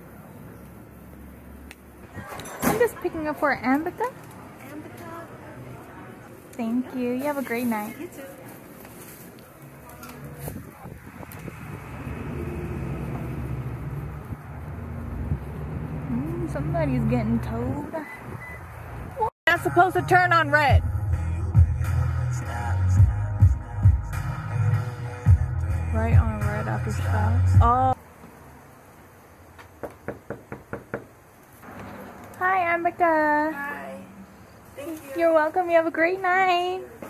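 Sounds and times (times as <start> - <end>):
road traffic rumble: 0.0 - 37.0
knuckles knocking on door: 29.8 - 31.1.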